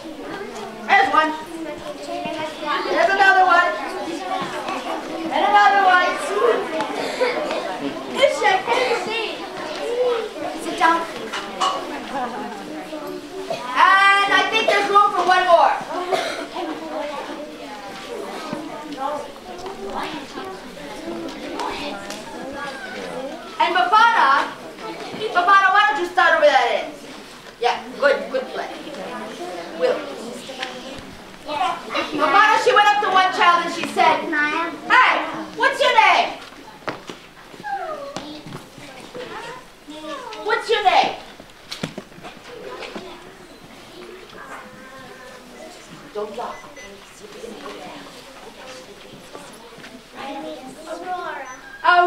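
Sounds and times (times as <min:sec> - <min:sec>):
person coughing: 0:16.1 - 0:16.6.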